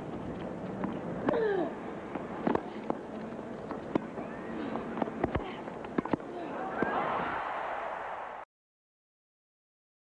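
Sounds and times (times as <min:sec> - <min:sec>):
crowd murmur: 0:02.5 - 0:08.4.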